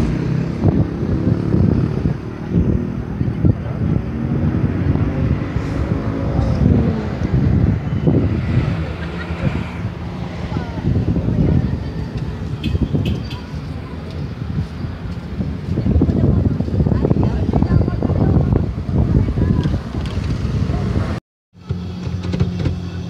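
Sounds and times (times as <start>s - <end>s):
babble of overlapping voices: 0.0s - 21.2s
wind rumbling on microphone: 0.0s - 23.0s.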